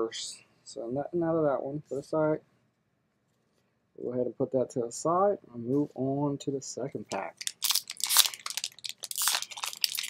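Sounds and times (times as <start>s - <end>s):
foil wrapper crinkling: 7.2s - 10.0s.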